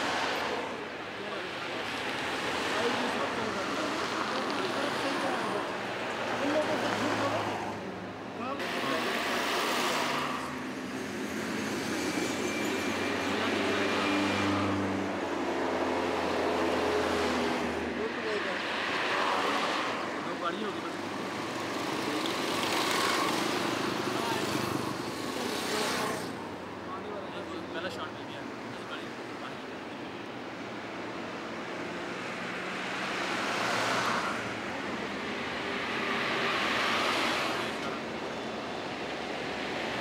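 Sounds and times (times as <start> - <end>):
vehicles passing: 0.0 - 40.0.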